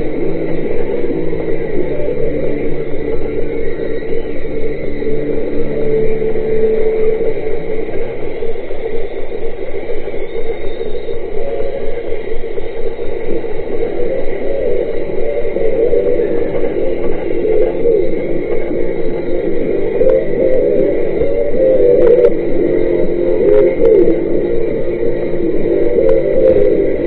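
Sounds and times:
muffled rock concert chords: 0.0 - 8.6, 12.9 - 27.0
steady low rumble: 0.0 - 27.0.

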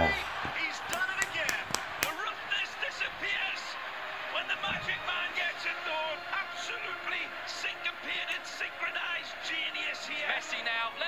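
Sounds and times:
background music: 0.0 - 11.0
sharp knocks: 0.9 - 2.2.

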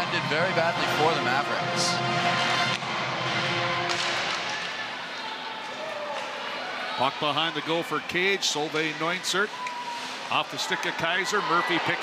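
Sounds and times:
stick hitting puck: 3.9 - 4.5.

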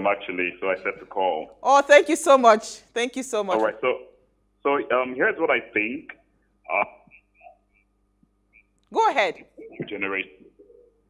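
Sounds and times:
clipped call fragments: 1.7 - 4.0.

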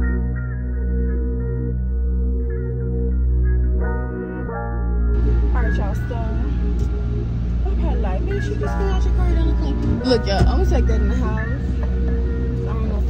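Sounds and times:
music with heavy bass: 0.0 - 13.0.

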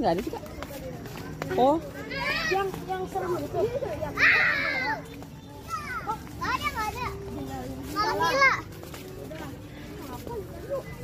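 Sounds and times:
children shouting and squealing: 1.1 - 9.1.

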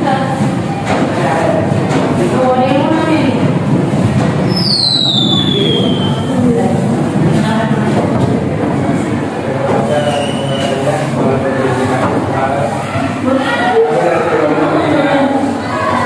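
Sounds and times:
students talking: 0.0 - 16.0.

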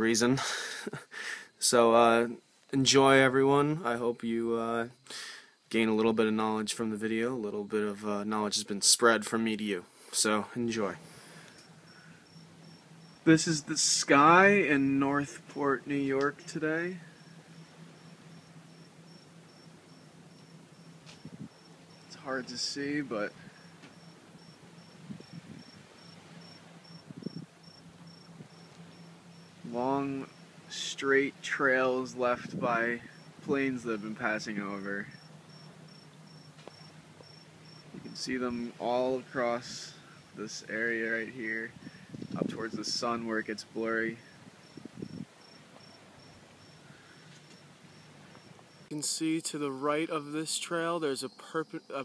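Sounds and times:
low hiss: 0.0 - 52.0
cricket chirping: 11.0 - 32.1, 32.8 - 34.0, 34.7 - 39.2, 39.8 - 40.4, 41.7 - 42.4, 44.1 - 49.0, 50.3 - 52.0.

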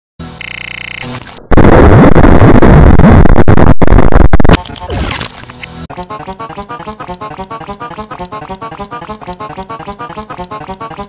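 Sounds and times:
loud distorted noise with pitch glides: 1.0 - 4.6.

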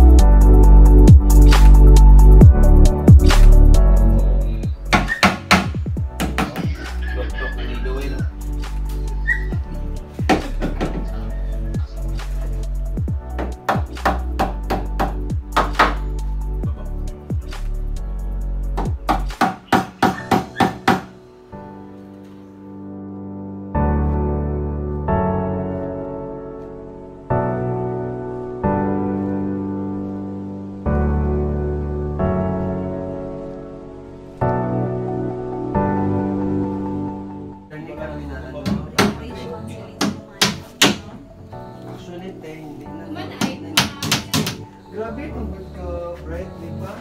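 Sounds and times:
background music: 0.0 - 47.0
hammer striking plywood: 4.9 - 6.7, 13.4 - 16.0, 18.8 - 21.1, 40.0 - 41.2, 43.4 - 44.6.

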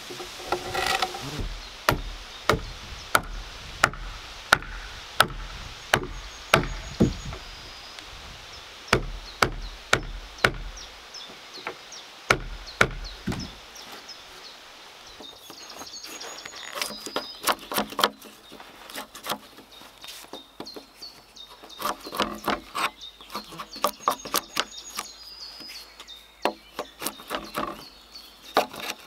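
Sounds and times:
birds chirping faintly: 0.0 - 29.0
blows knocking on heavy timber: 0.1 - 7.5, 8.9 - 10.9, 11.6 - 13.6.

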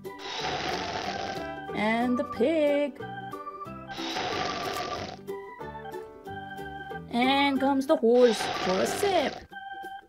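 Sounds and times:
even hiss: 0.0 - 1.5, 3.9 - 5.2, 8.2 - 9.4.

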